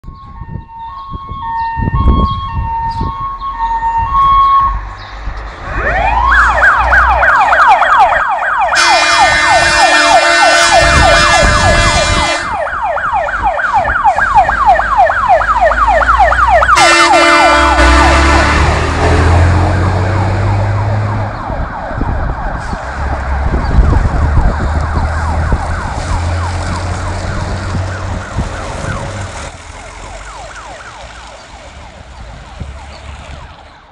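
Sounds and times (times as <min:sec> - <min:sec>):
fire engine siren wailing: 0:00.0 - 0:33.9
truck engine rumbling: 0:00.3 - 0:33.9
truck horn blasts: 0:08.8 - 0:12.6, 0:16.7 - 0:19.6.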